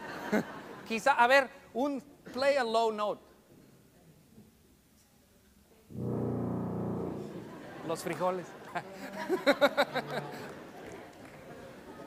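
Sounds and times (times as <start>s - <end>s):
tuba playing a low note: 5.9s - 7.7s.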